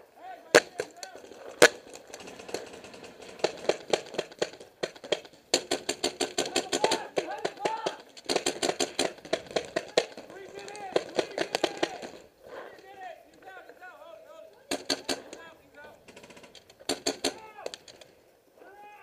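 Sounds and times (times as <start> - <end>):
paintball markers firing: 0.5 - 13.5, 14.6 - 18.1.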